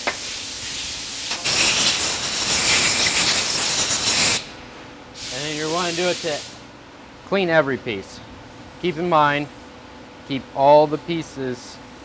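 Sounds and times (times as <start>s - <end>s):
aerosol spray hissing: 0.2s - 4.5s, 5.2s - 6.6s.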